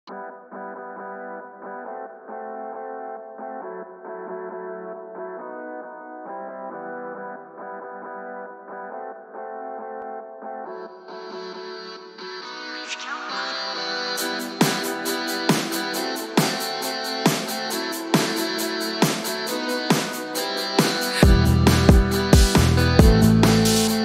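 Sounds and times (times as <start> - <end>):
effects-laden electric guitar: 0.1 - 24.0
alternative rock beat: 13.6 - 24.0.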